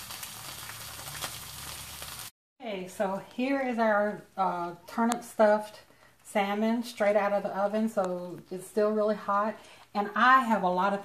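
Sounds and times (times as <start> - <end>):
fish sizzling in a skillet: 0.0 - 2.3.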